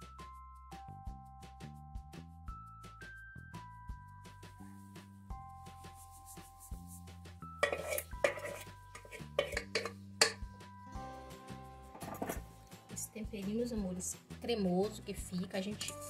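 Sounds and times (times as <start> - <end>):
background music of held notes: 0.0 - 16.0
utensil scraping metal bowl: 7.6 - 10.4
sharp knocks on metal pan: 7.6 - 10.5.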